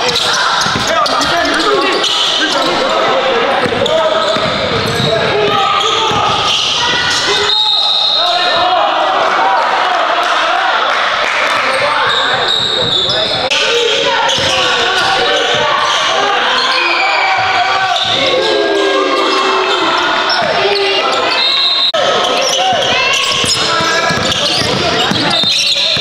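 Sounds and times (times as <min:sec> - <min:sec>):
overlapping voices in echoing hall: 0:00.0 - 0:26.0
basketball bouncing on hardwood: 0:23.4 - 0:26.0.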